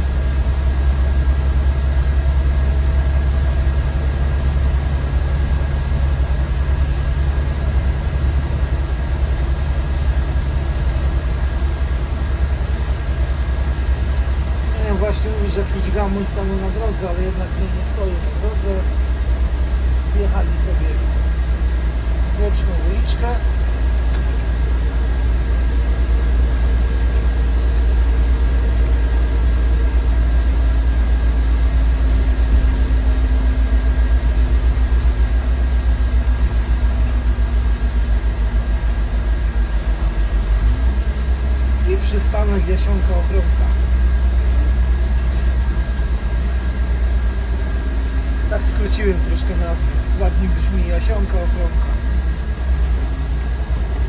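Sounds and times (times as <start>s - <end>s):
bus engine rumbling: 0.0s - 54.0s.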